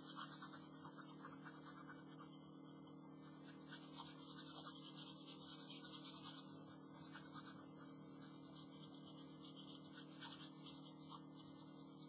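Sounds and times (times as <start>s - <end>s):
low steady hum: 0.0s - 12.0s
pencil shading on paper: 0.0s - 12.0s.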